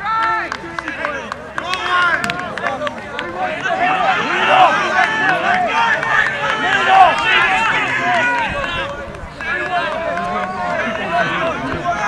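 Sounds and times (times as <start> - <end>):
crowd shouting: 0.0 - 12.0
long drawn-out shout: 1.6 - 12.0.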